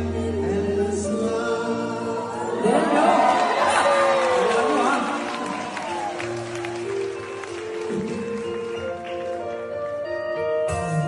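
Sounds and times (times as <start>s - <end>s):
men singing duet through microphones: 0.0s - 3.6s
people laughing: 2.5s - 5.8s
overlapping voices and whoops: 2.5s - 8.7s.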